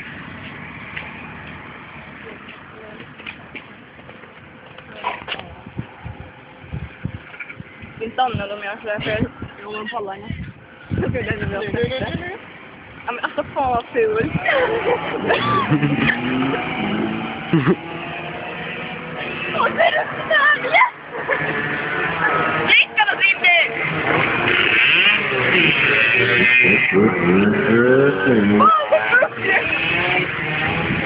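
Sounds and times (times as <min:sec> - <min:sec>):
car engine and road noise: 0:00.0 - 0:31.0.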